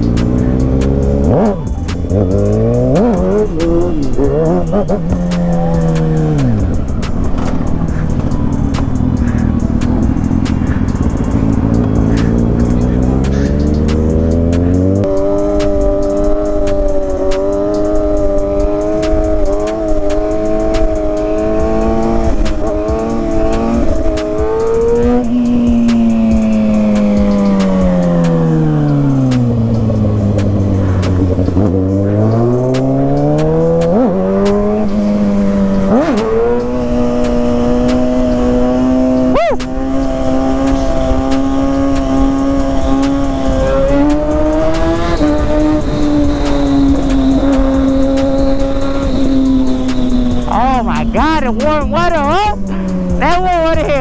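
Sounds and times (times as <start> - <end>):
motorcycle engine while riding: 0.0 - 54.0
motorcycle throttle blips: 0.0 - 54.0.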